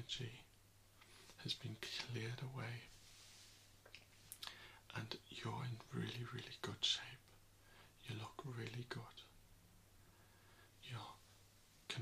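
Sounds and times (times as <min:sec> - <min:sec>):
mouth clicks and lip sounds: 0:03.8 - 0:04.6.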